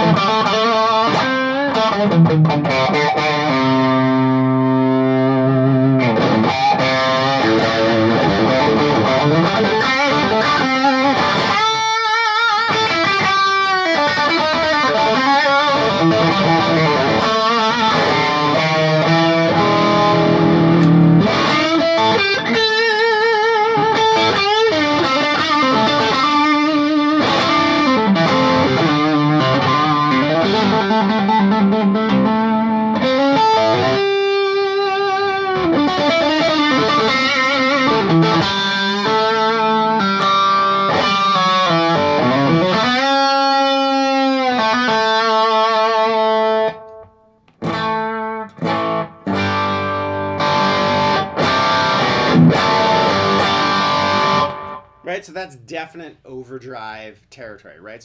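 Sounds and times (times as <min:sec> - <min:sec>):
overdriven electric guitar lead: 0:00.0 - 0:55.0
guitar chord stabs: 0:00.0 - 0:56.3.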